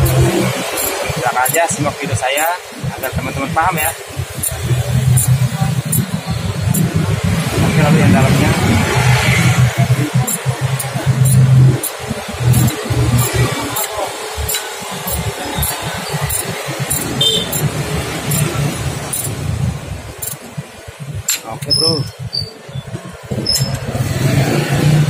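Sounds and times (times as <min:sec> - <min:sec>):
socket tool metallic clicks: 0:00.0 - 0:01.7, 0:10.3 - 0:17.7, 0:18.3 - 0:19.4, 0:20.2 - 0:20.5.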